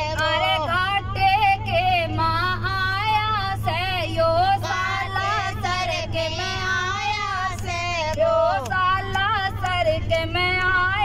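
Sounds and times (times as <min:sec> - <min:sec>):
low drone of moving bus: 0:00.0 - 0:11.0
woman singing into a microphone: 0:00.0 - 0:11.0.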